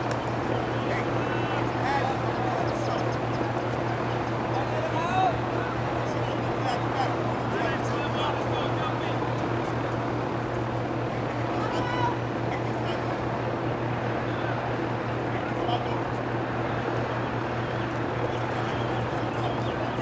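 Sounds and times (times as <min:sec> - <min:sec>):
distant voices calling out: 0:00.0 - 0:20.0
steady low hum: 0:00.0 - 0:20.0.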